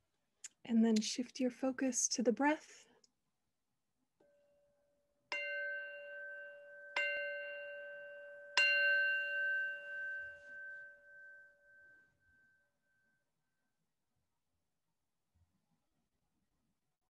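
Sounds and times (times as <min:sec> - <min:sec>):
singing bowl ringing: 0:04.2 - 0:13.7.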